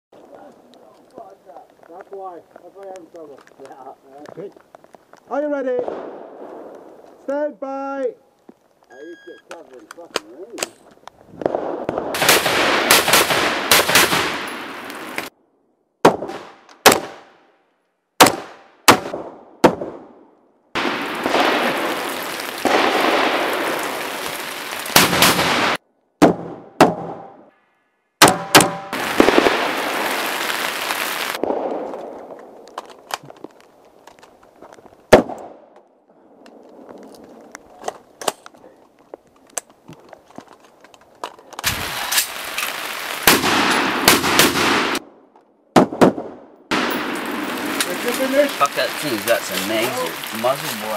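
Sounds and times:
rifle shots: 11.4 - 14.8, 16.0 - 17.4, 18.2 - 20.1, 25.0 - 27.4, 43.2 - 45.1.

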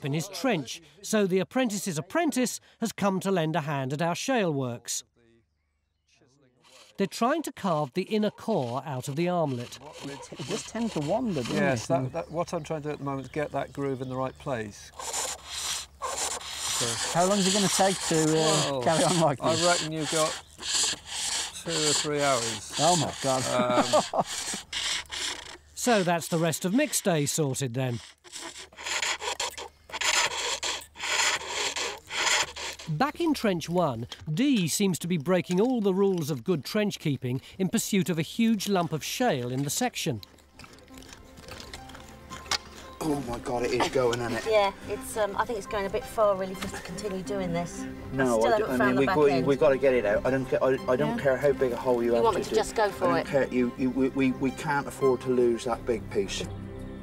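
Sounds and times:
cutting tool rasping on lathe: 6.6 - 12.0, 14.9 - 34.2.

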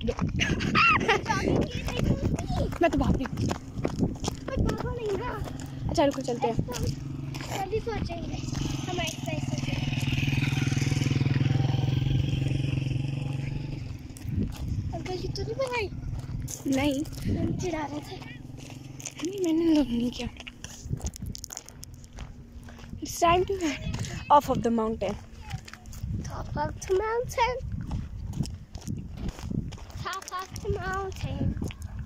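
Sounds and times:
jogging footsteps on gravel: 0.0 - 10.2, 13.7 - 32.0
low engine hum: 0.0 - 29.8.

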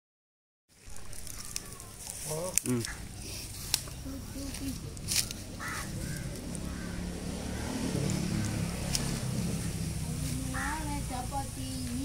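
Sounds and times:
low outdoor rumble: 0.7 - 12.0.

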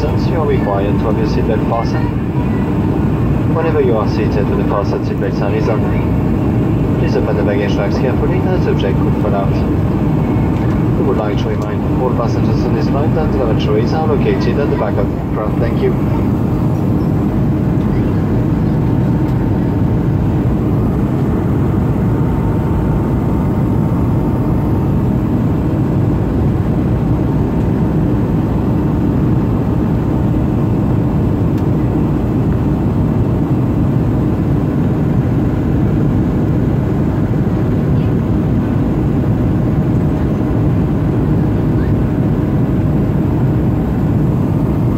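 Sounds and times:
faint steady whine: 0.0 - 44.9
jet engines and airflow roar: 0.0 - 44.9.

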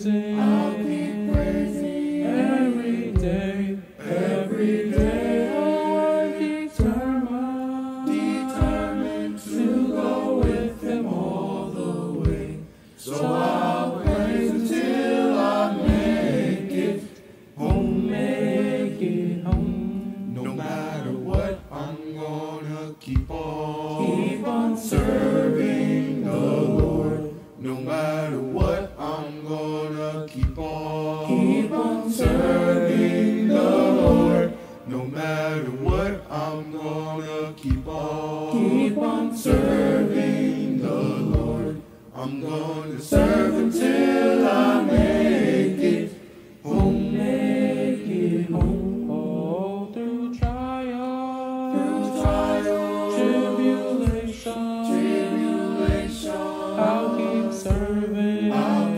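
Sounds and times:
choir singing a cappella: 0.0 - 58.9
low beat thump: 0.4 - 7.4, 8.0 - 17.0, 17.6 - 49.3, 50.4 - 50.9, 51.7 - 58.9.

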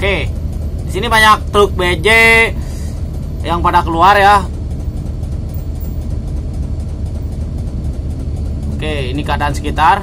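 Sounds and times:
road traffic rumble: 0.0 - 10.0
truck diesel engine: 0.0 - 10.0.

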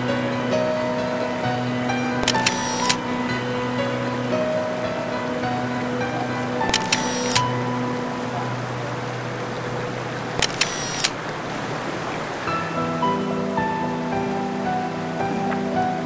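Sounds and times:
slow music of held chords: 0.0 - 10.9, 12.5 - 16.0
water rushing: 0.0 - 16.0.

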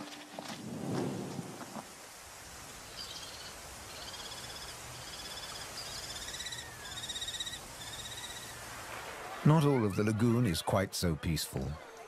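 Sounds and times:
kestrels calling in rapid trills: 3.0 - 8.6.

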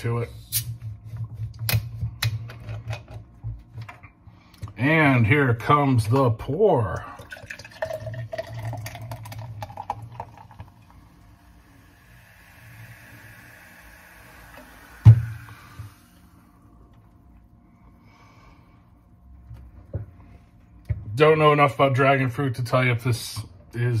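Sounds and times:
soda pouring into glass: 7.0 - 16.3
foam fizzing: 9.3 - 16.4.

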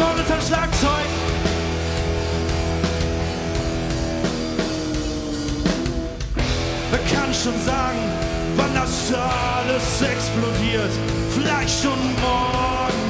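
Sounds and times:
lead vocal singing: 0.0 - 1.5, 6.8 - 13.0
live rock band playing: 0.0 - 13.0.

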